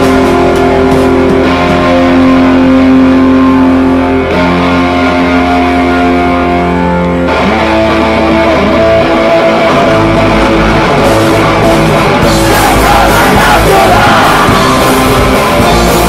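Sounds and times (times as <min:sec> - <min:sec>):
electric guitar chords: 0:00.0 - 0:16.0.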